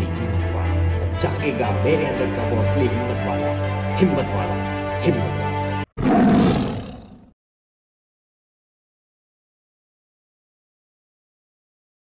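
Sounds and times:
loud roar: 6.0s - 7.3s.

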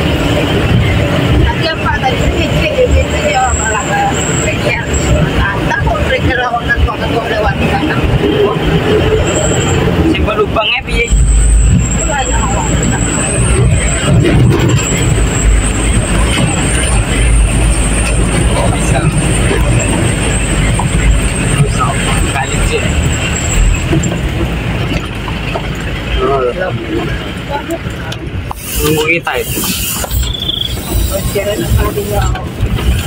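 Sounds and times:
truck cab rattling: 0.0s - 28.6s
truck engine under load: 0.0s - 33.0s
voices talking: 0.0s - 33.0s.

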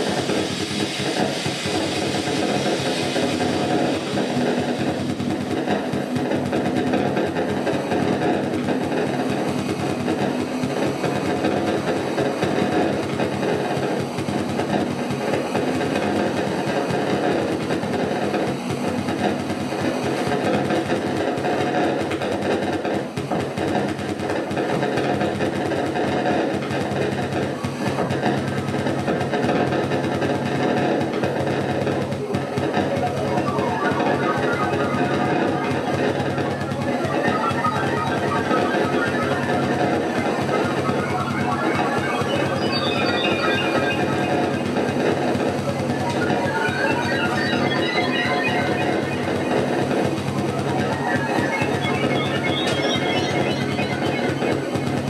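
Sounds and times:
low synthesizer drones: 0.0s - 14.8s, 31.1s - 55.0s.

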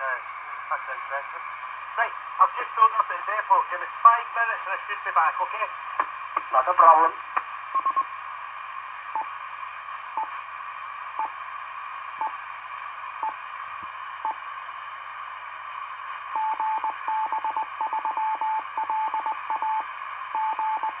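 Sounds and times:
radio carrier hiss: 0.0s - 17.0s
morse code beeps: 16.4s - 19.8s, 20.4s - 21.0s.

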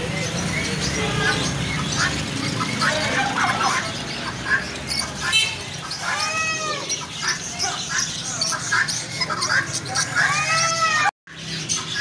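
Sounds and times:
caged birds chattering and chirping: 0.0s - 12.0s
meow-like bird call: 6.0s - 7.0s, 10.2s - 11.1s.

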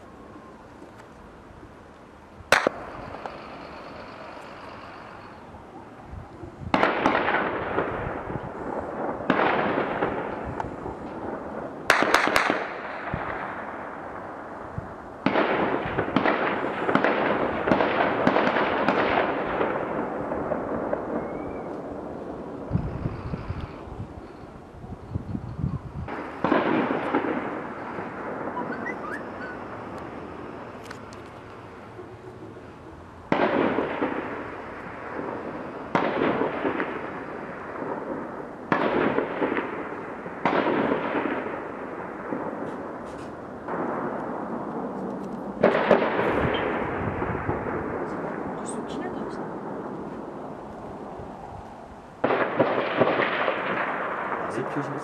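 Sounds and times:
loud blasts with long echo: 2.3s - 55.0s
rapid crackling bursts: 2.5s - 5.9s.

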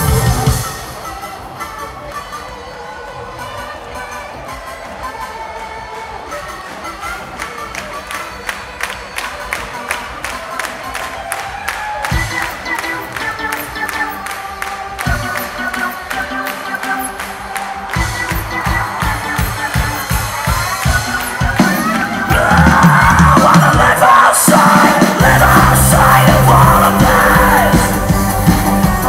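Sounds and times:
live rock band: 0.0s - 3.0s, 11.8s - 29.0s
crowd cheering: 0.0s - 29.0s.

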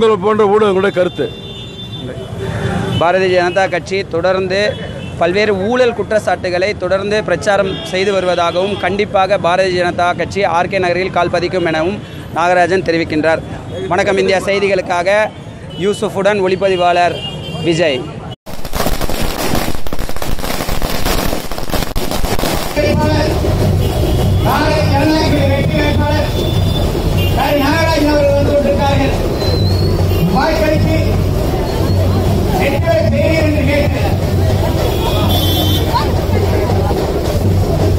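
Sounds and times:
street traffic engine rumble: 0.0s - 18.4s, 22.0s - 37.9s
firecrackers cracking: 18.5s - 24.0s
crowd chatter: 22.8s - 37.9s.

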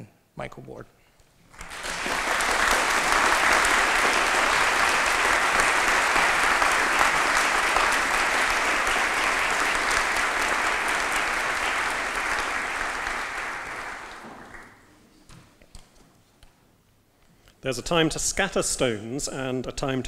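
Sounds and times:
audience applauding: 1.5s - 14.9s.

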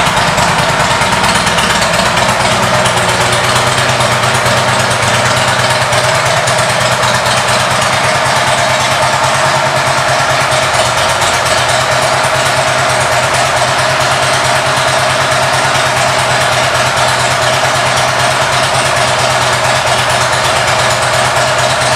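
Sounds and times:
motorcycle engine idling: 0.0s - 21.9s.

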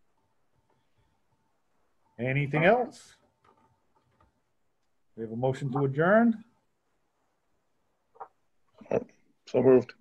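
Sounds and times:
person speaking: 2.2s - 3.2s, 5.1s - 6.5s.

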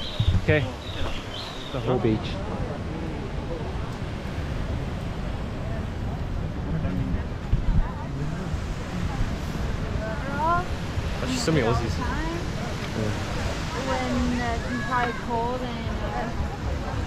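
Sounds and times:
faint voices: 0.0s - 17.0s
surf on a sandy beach: 0.0s - 17.0s
wind rumbling on microphone: 0.0s - 17.0s.

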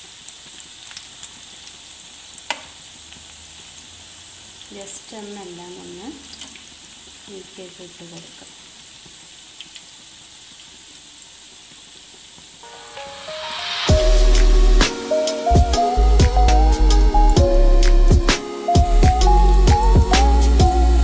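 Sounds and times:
cutlets sizzling in oil: 0.0s - 17.0s
music with heavy beat: 12.6s - 21.0s.

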